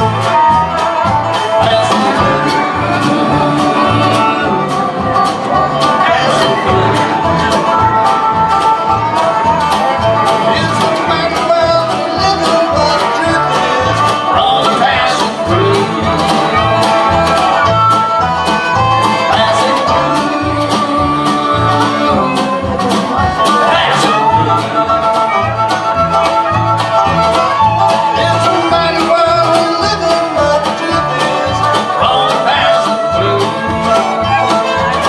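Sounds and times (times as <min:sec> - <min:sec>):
banjo: 0:00.0 - 0:35.0
fiddle: 0:00.0 - 0:35.0
steady drum beat: 0:00.0 - 0:35.0
strummed acoustic guitar: 0:00.0 - 0:35.0
upright bass: 0:00.0 - 0:35.0.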